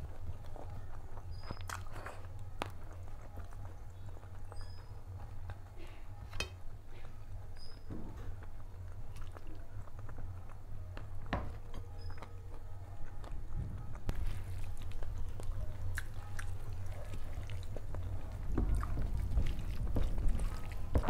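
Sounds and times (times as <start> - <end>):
steady low hum: 0.0 - 21.0
hand squishing food: 14.1 - 21.0.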